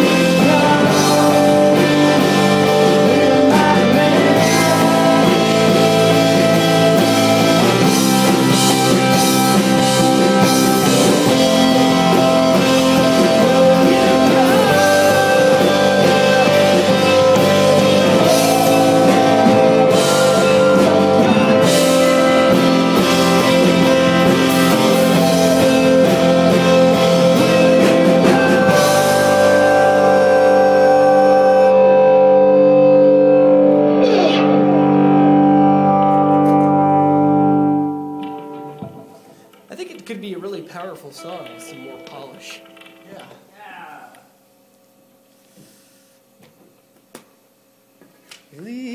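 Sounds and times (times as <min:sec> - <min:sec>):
rock song with guitars: 0:00.0 - 0:39.7, 0:41.2 - 0:43.5.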